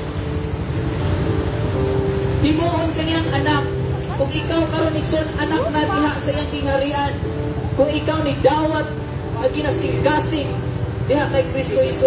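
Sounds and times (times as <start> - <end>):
acoustic guitar playing softly: 0.0 - 12.0
low rumble of street traffic: 0.0 - 12.0.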